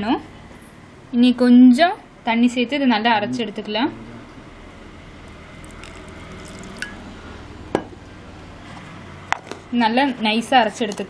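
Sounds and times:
water pouring into a jar: 0:05.2 - 0:07.1.

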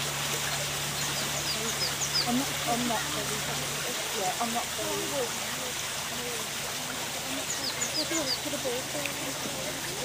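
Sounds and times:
rushing water: 0:00.0 - 0:10.0
bird chirping: 0:00.9 - 0:02.7, 0:07.3 - 0:08.7.

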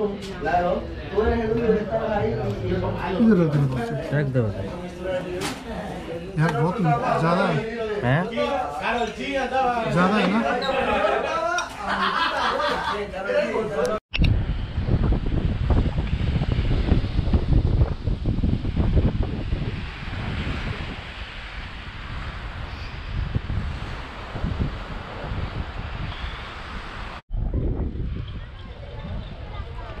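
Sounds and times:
wind buffeting microphone: 0:14.1 - 0:30.0.

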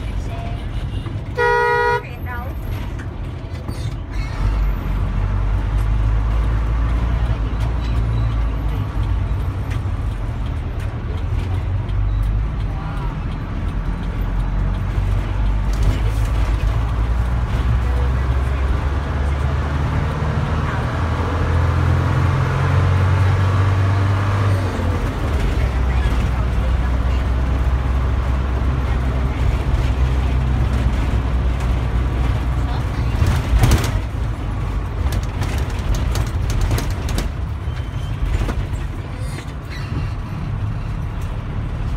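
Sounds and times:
bus engine drone: 0:00.0 - 0:41.9
road and traffic noise: 0:00.0 - 0:41.9.

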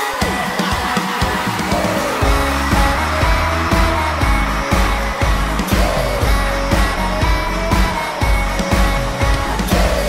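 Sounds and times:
instrumental pop music with beat: 0:00.0 - 0:10.0
deep bass: 0:01.7 - 0:10.0.

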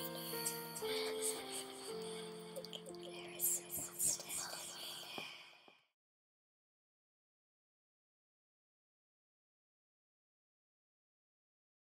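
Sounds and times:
person whispering: 0:00.0 - 0:05.6.

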